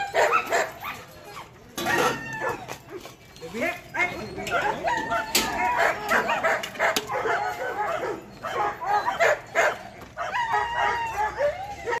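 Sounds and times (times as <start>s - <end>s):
dogs barking and yipping: 0.0s - 12.0s.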